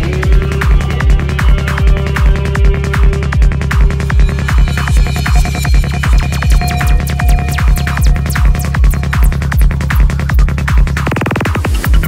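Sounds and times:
trance music: 0.0s - 12.0s.

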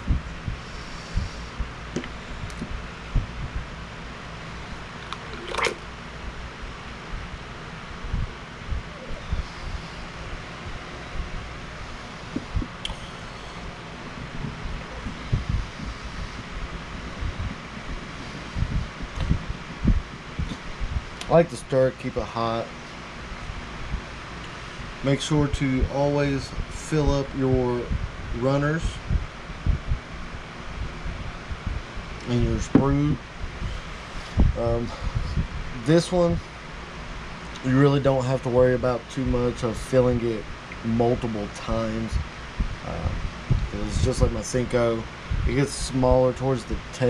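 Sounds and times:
electric fan running: 0.0s - 47.0s.

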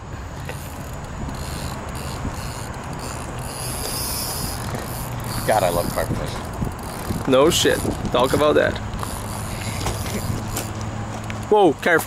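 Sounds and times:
fishing reel drag running: 0.4s - 11.5s.

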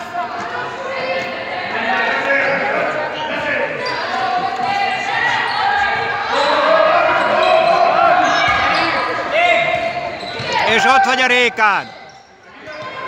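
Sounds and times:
people shouting in a hall: 0.0s - 13.0s
shoe squeak: 3.8s - 4.4s, 7.2s - 11.2s, 11.8s - 13.0s.

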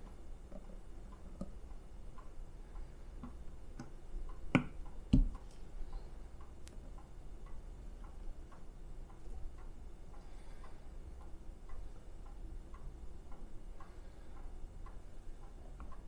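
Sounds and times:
light ticking: 0.0s - 16.0s.

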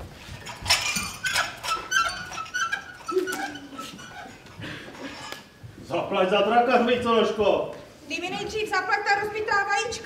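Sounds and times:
wheelbarrow wheel squeaking: 0.0s - 5.6s.

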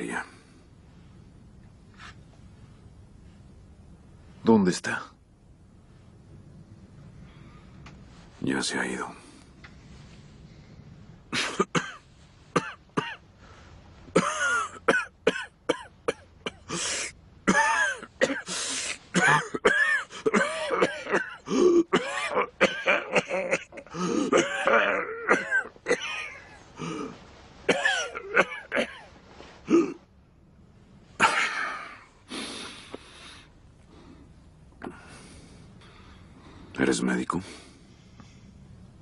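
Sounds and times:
man coughing: 11.3s - 12.0s, 12.6s - 13.2s, 14.1s - 16.8s, 17.4s - 18.5s, 19.1s - 30.0s, 31.2s - 32.1s.

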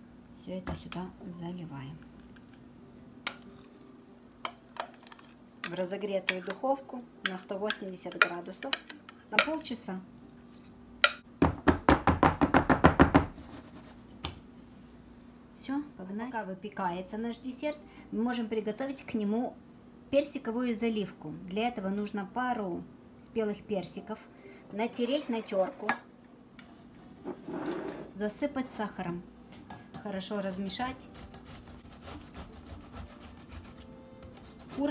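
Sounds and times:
metal pan knocking on countertop: 11.4s - 13.3s.

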